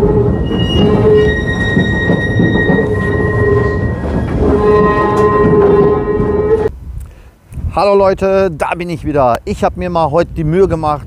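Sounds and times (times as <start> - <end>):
steel wheels squealing: 0.0 - 6.7
tram rattling rumble: 0.0 - 6.8.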